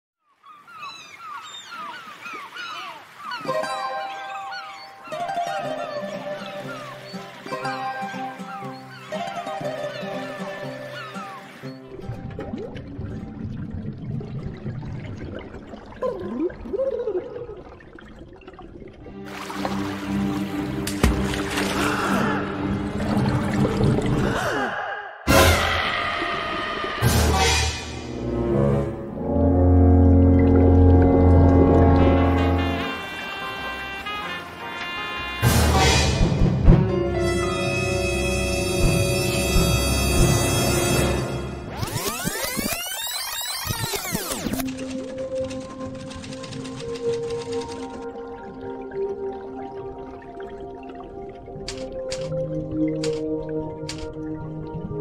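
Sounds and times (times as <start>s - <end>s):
flock of birds calling: 0.4s - 11.8s
background music: 3.4s - 14.1s, 18.8s - 24.6s, 25.3s - 41.9s, 44.3s - 55.0s
cartoon voices sighing and moaning: 24.2s - 27.0s.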